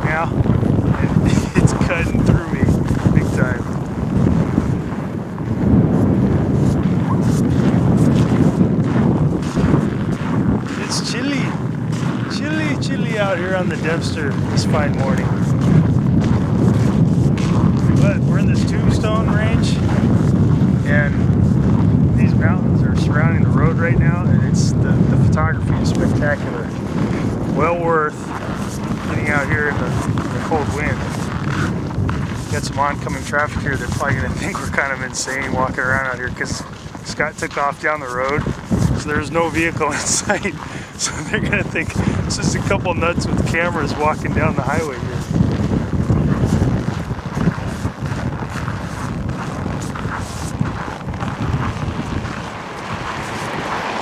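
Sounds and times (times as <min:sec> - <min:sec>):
person speaking: 0:00.0 - 0:03.7, 0:10.7 - 0:15.4, 0:28.9 - 0:31.8, 0:32.6 - 0:45.2
wind buffeting microphone: 0:00.0 - 0:54.0.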